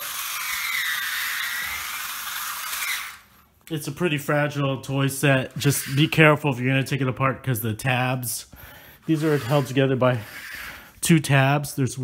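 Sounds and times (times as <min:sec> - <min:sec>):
toy train motor whirring: 0:00.0 - 0:03.4.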